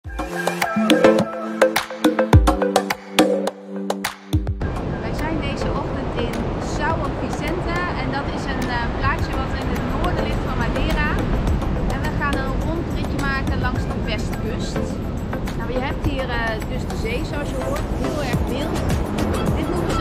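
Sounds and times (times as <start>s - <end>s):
wind buffeting microphone: 4.6s - 20.0s.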